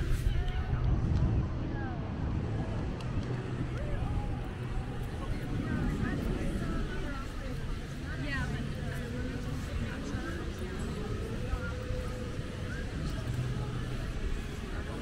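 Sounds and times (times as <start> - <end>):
people talking: 0.0 - 15.0.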